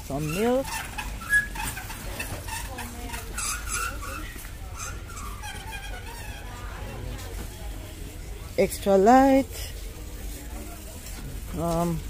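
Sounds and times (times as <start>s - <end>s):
shopping trolley clicks and rattles: 0.0s - 7.5s
indistinct voices of shoppers: 0.0s - 12.0s.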